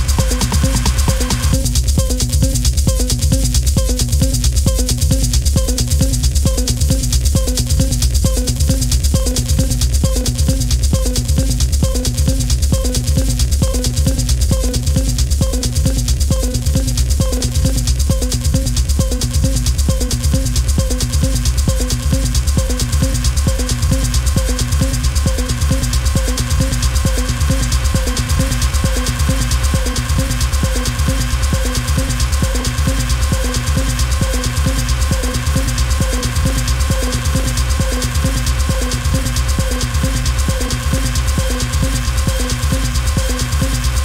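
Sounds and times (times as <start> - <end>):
hard techno music: 0.0 - 44.0.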